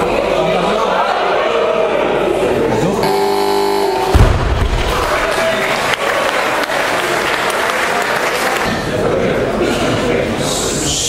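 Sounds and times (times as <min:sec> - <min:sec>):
spectators' voices: 0:00.0 - 0:11.0
steady electronic tone: 0:03.0 - 0:04.2.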